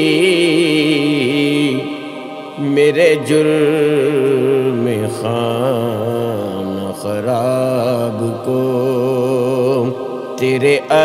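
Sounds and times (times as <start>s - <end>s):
man singing ornamented notes: 0.0s - 11.0s.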